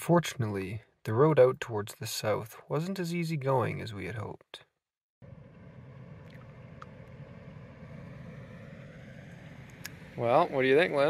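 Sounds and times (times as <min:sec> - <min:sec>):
van engine rumbling: 0:05.2 - 0:11.0.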